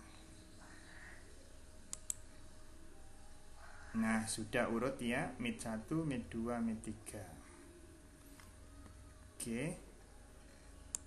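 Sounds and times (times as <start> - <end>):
computer mouse clicks: 1.9 - 2.2.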